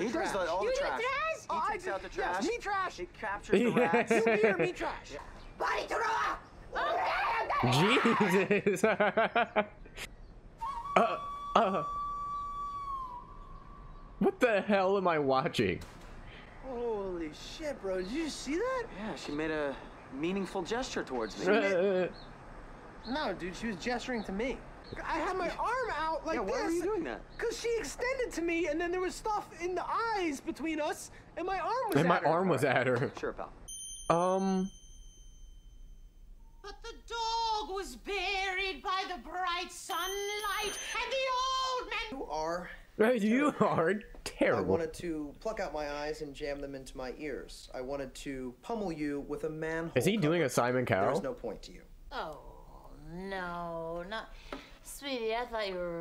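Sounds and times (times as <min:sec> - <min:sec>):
faint high steady tone: 0:33.7 - 0:38.5, 0:39.4 - 0:42.2.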